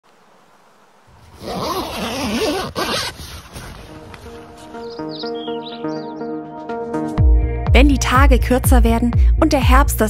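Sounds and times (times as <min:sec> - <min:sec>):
tent zipper rasping: 0:01.2 - 0:04.7.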